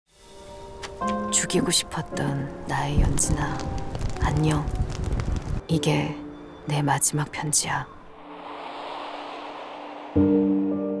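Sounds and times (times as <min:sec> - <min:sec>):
whoosh transition effect: 0:08.1 - 0:11.0.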